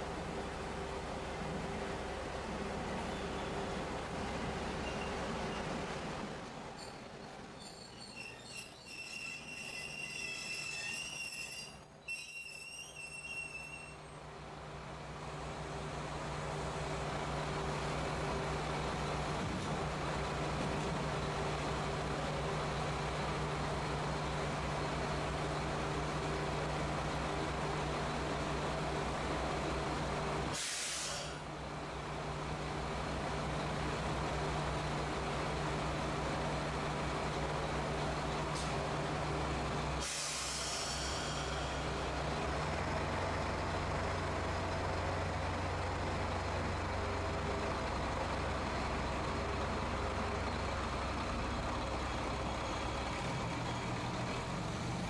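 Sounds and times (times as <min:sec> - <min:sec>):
train brakes squealing: 0:04.7 - 0:05.9, 0:06.5 - 0:14.2, 0:30.6 - 0:31.4, 0:40.0 - 0:42.0
air release hiss: 0:30.5 - 0:31.4, 0:40.0 - 0:41.8
diesel engine idling: 0:31.3 - 0:55.0.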